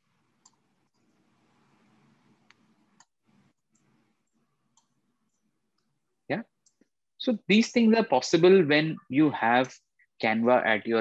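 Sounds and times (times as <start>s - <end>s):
computer mouse clicks: 0.4s - 1.2s, 2.3s - 5.9s, 6.6s - 6.9s.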